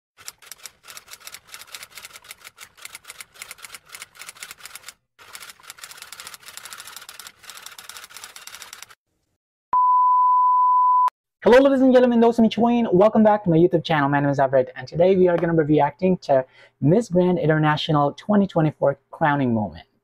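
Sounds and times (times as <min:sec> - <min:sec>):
steady test tone beep: 0:09.7 - 0:11.1.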